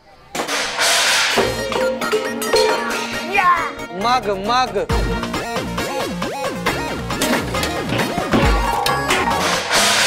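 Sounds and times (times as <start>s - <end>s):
background music with held notes: 1.3s - 10.0s.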